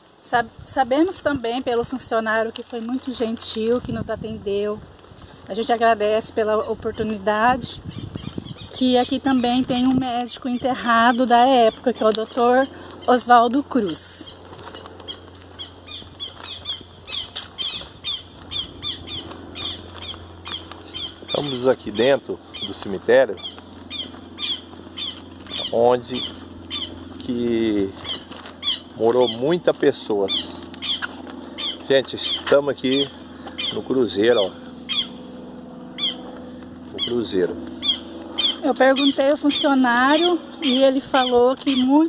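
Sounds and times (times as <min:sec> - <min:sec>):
birds chirping: 0:00.0 - 0:42.0
steady low hum: 0:00.0 - 0:42.0.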